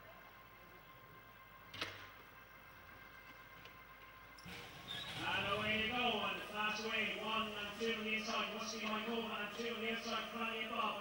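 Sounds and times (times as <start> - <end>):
race commentator's voice: 5.1 - 11.0.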